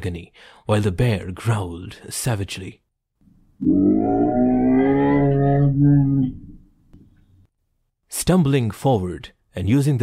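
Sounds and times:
bear growling: 0:03.6 - 0:06.6.

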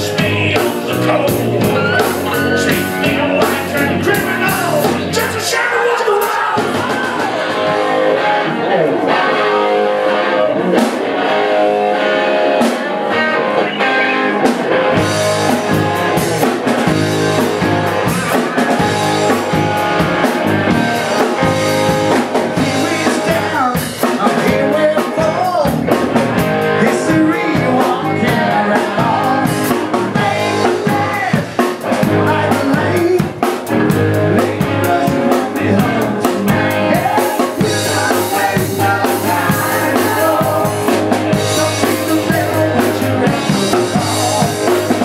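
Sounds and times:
person singing: 0:00.0 - 0:09.5, 0:21.0 - 0:26.0, 0:26.6 - 0:45.0
drum kit: 0:00.0 - 0:45.0
electric guitars: 0:00.0 - 0:45.0.

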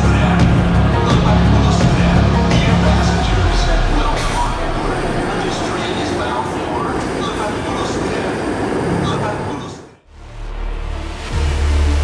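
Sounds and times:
indistinct voices: 0:00.0 - 0:10.0
train wheels rumbling: 0:00.2 - 0:09.9.

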